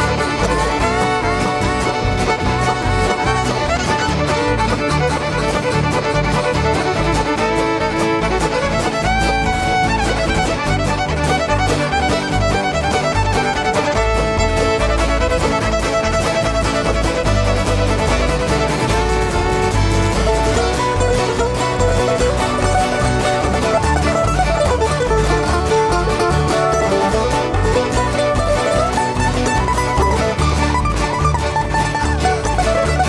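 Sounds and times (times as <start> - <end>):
fiddle melody: 0.0 - 33.0
guitar: 0.0 - 33.0.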